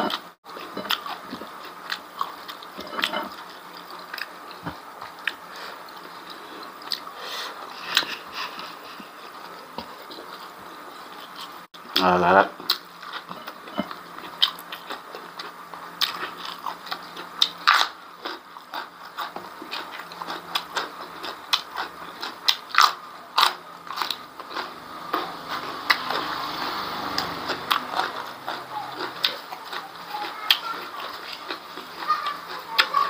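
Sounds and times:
person chewing and crunching: 0.0 - 33.0.

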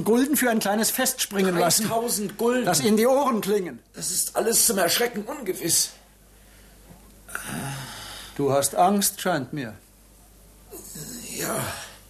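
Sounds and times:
man's nasal exhale with hum: 7.3 - 8.4.

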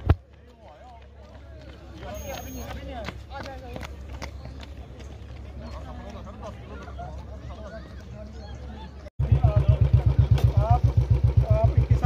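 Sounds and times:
running shoes slapping on asphalt: 0.0 - 8.2
voices talking: 0.2 - 12.0.

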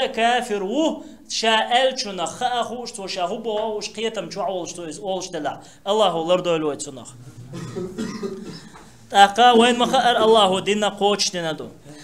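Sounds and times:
man speaking: 0.0 - 8.0, 9.1 - 12.0
man clearing his throat: 7.4 - 8.9.

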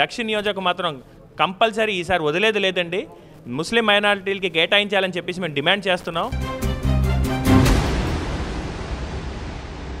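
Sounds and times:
musical hit: 6.3 - 10.0.

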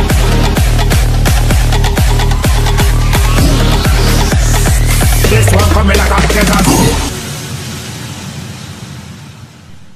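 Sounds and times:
dance music: 0.0 - 7.3
steady hissing noise: 7.1 - 9.9.

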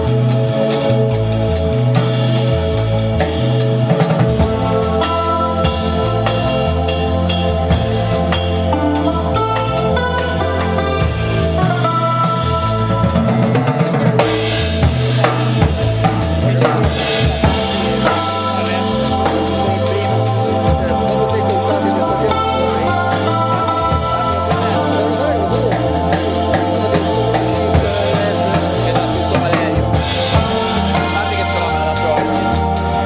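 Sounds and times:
drum kit hits: 0.0 - 33.0
held higher notes: 0.0 - 33.0
keyboard playing: 0.0 - 33.0
low bass line: 0.0 - 33.0.

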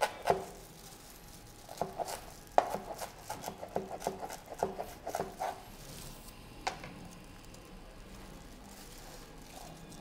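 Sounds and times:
cleaver chopping on cutting board: 1.8 - 5.6.

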